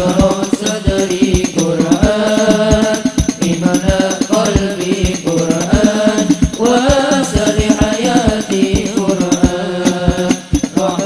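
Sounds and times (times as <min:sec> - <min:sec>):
frame drums beating: 0:00.0 - 0:11.0
men chanting in unison: 0:00.0 - 0:11.0.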